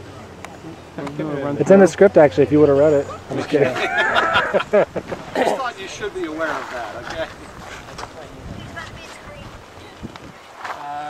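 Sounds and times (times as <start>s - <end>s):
wind rumbling on microphone: 3.0s - 10.7s
person laughing: 3.3s - 5.8s.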